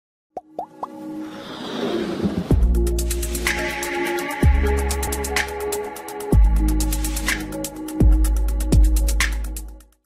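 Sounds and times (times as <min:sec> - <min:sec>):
quick pops rising in pitch: 0:00.4 - 0:01.0.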